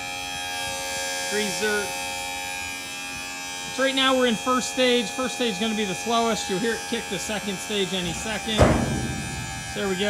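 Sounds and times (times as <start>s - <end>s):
hydraulic pump humming: 5.3s - 10.0s.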